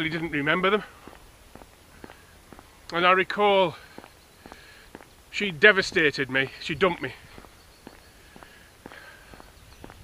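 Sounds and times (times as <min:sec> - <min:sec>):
footsteps on pavement: 0:00.0 - 0:10.0.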